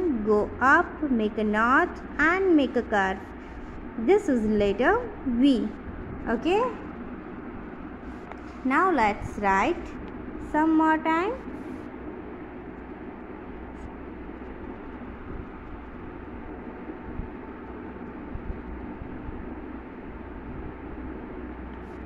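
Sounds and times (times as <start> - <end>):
background rumble and hiss: 0.0 - 22.0.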